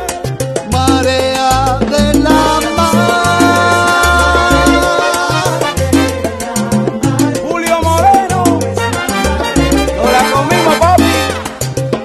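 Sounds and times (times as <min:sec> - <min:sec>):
bass line: 0:00.0 - 0:12.0
quick hand percussion: 0:00.0 - 0:12.0
salsa music: 0:00.0 - 0:12.0.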